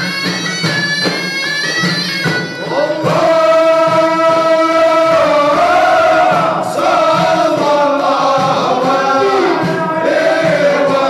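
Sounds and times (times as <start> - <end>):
frame drums beating: 0.0 - 11.0
men chorus singing: 2.6 - 11.0.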